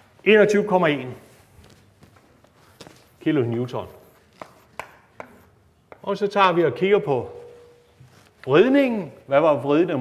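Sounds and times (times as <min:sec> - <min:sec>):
chalk tapping on blackboard: 0:04.0 - 0:06.2.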